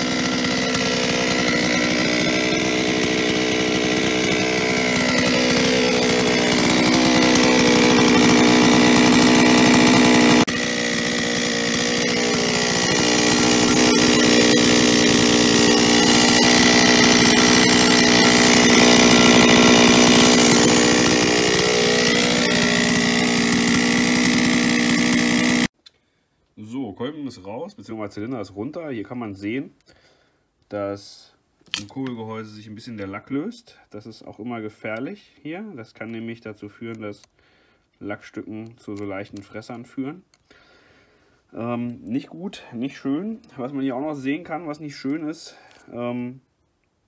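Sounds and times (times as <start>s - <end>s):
chainsaw idling with metallic rattle: 0.0s - 25.7s.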